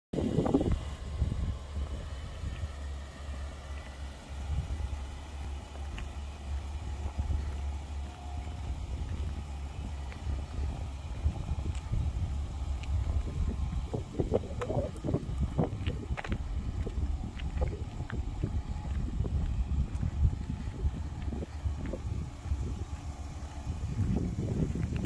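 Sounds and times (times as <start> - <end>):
truck engine idling: 0.2 - 25.0.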